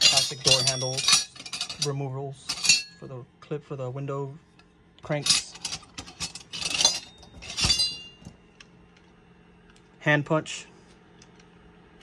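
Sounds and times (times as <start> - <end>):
metal tools clattering in drawer: 0.0 - 3.0, 5.1 - 8.3.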